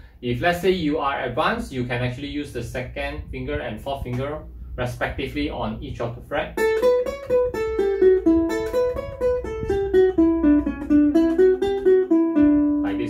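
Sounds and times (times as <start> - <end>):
ukulele playing scale: 3.2 - 13.0.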